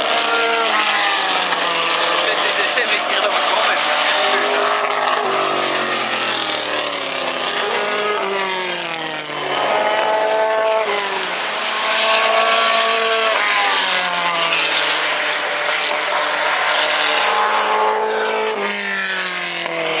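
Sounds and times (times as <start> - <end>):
racing car engines accelerating: 0.0 - 20.0.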